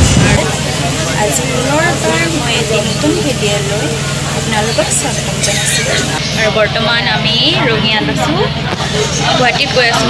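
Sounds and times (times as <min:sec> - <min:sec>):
woman talking: 0:00.0 - 0:08.6, 0:09.2 - 0:10.0.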